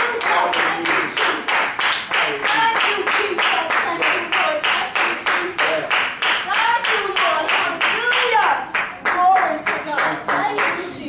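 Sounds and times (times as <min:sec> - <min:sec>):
congregation clapping in time: 0:00.0 - 0:10.8.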